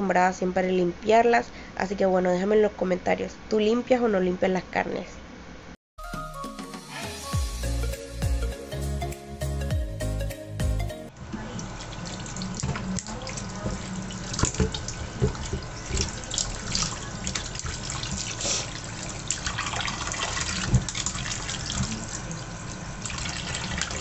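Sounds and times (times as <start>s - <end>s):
water splashing: 11.5s - 24.0s
hands rubbing and rinsing meat: 11.6s - 24.0s
tap water running into pot: 11.6s - 24.0s.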